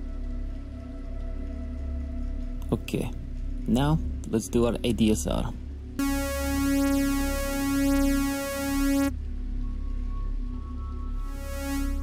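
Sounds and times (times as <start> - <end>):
buzzy sawtooth synth note: 6.0 - 9.1, 11.3 - 12.0
soft dull synth tones: 6.0 - 9.1, 11.1 - 12.0.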